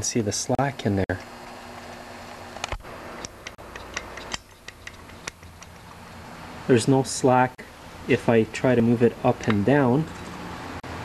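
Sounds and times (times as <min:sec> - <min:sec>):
light metallic clicks: 0:02.6 - 0:05.9.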